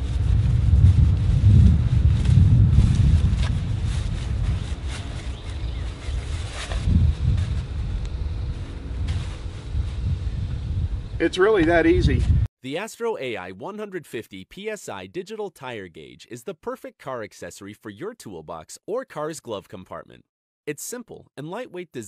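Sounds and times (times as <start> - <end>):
wind buffeting microphone: 0.0 - 12.5.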